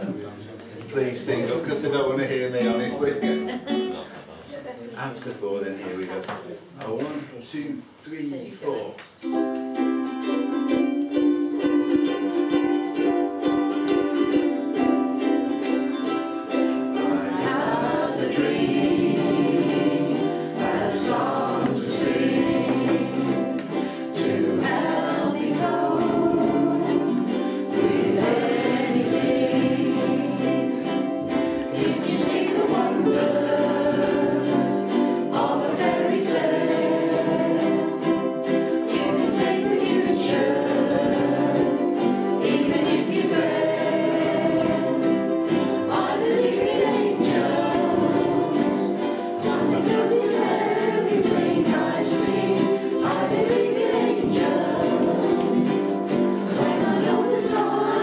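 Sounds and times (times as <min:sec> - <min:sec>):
ukuleles strumming chords: 0:00.0 - 0:04.2, 0:08.7 - 0:58.0
group singing in unison: 0:10.0 - 0:58.0.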